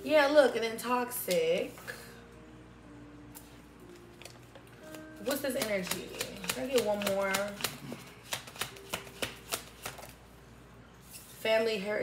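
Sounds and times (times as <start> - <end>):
playing cards snapping: 5.6 - 10.2.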